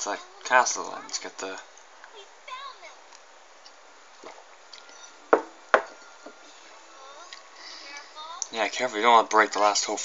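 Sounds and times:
sharp knocks: 0:05.3 - 0:06.0.

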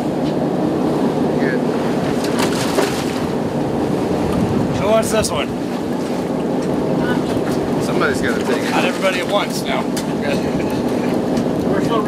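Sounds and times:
boat noise: 0:00.0 - 0:12.0
sea: 0:00.0 - 0:12.0
wind on microphone: 0:01.9 - 0:08.4.

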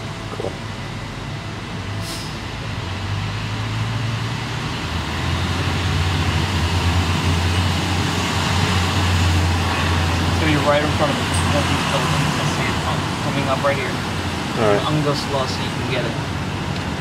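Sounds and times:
car engine and road noise: 0:00.0 - 0:17.0.

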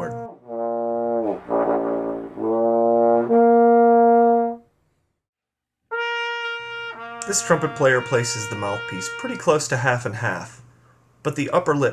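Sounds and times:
trombone playing held notes: 0:00.0 - 0:04.6, 0:05.9 - 0:10.0.

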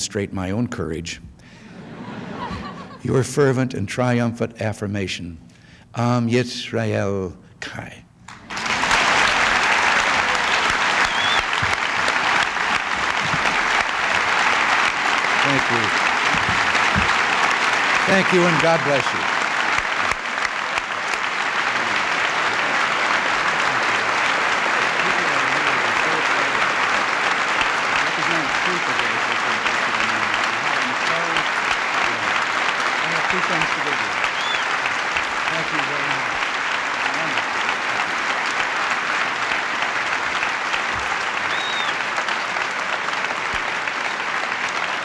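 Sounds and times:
audience applauding: 0:08.3 - 0:45.0.

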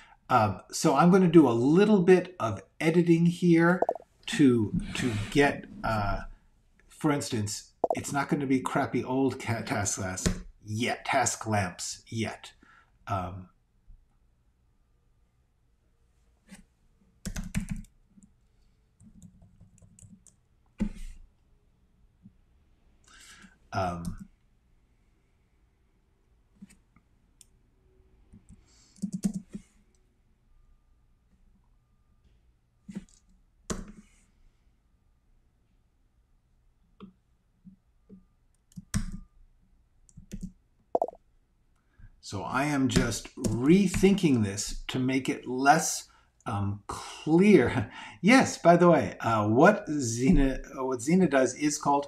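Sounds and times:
typing on computer keyboard: 0:17.2 - 0:17.9, 0:28.3 - 0:29.6, 0:38.6 - 0:39.3, 0:40.1 - 0:41.1
mouse buttons clicking: 0:41.0 - 0:41.2.

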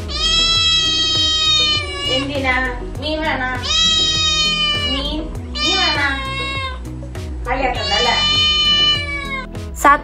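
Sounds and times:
kitten meowing: 0:00.0 - 0:02.4, 0:03.5 - 0:06.9, 0:07.6 - 0:09.5
background music: 0:00.0 - 0:10.0.

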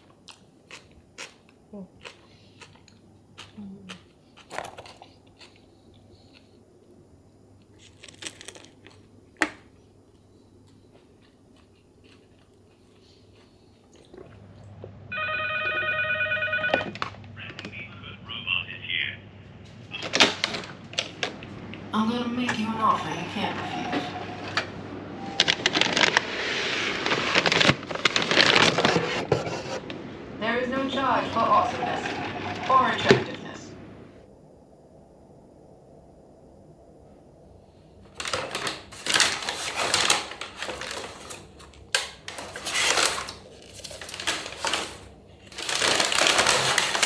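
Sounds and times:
crunching and chewing: 0:00.0 - 0:14.6
electronic ringing tone: 0:15.1 - 0:16.9.

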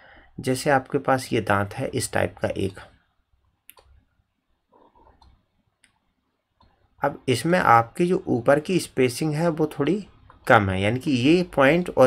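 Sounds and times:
faint sharp clicks: 0:03.6 - 0:04.0.

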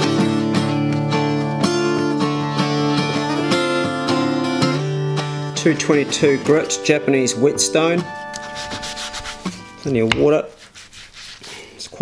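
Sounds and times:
acoustic guitar chord ringing: 0:00.0 - 0:08.6
faint rubbing noise: 0:08.4 - 0:12.0.

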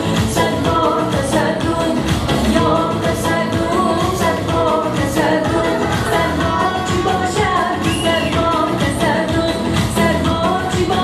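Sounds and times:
amplified backing music with beat: 0:00.0 - 0:11.0
woman singing into a microphone: 0:00.0 - 0:11.0.

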